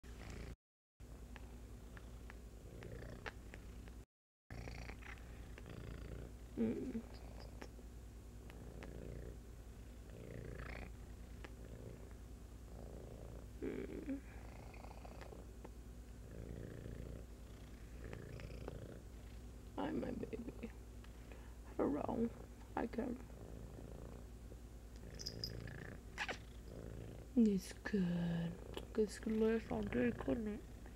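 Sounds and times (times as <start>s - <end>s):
cat purring: 0.1s - 0.6s, 1.3s - 7.7s, 8.4s - 30.9s.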